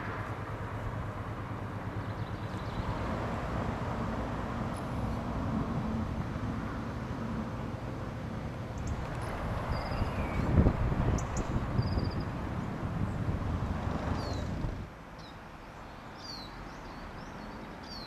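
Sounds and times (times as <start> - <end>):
road traffic rumble: 0.0 - 18.0
small birds chirping: 1.9 - 3.0, 8.7 - 12.4, 13.9 - 18.0.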